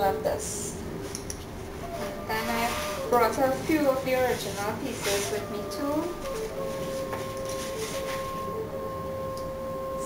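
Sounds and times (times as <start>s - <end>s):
two held notes: 5.6s - 10.0s.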